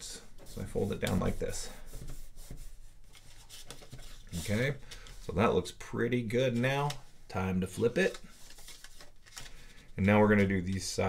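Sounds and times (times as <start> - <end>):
paper rubbing and rustling: 0.4 - 5.4, 7.8 - 9.6.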